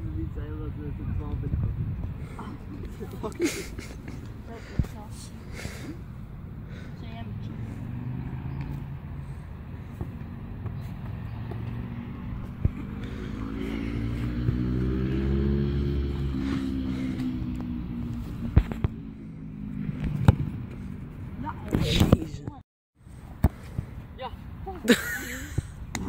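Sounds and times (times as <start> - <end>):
vehicle engine passing: 2.2 - 22.2.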